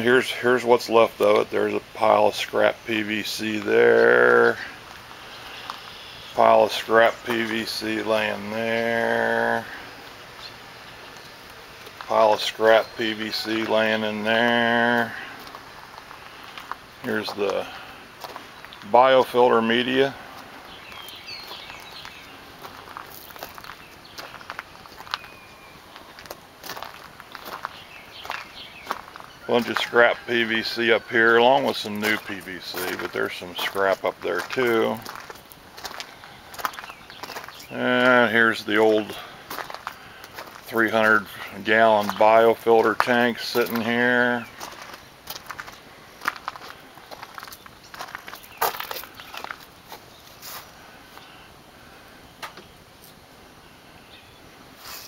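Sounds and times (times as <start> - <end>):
footsteps on gravel and grass: 1.0 - 51.3.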